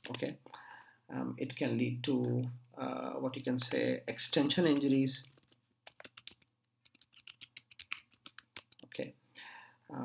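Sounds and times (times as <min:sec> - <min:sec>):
computer keyboard typing: 0:04.4 - 0:08.9.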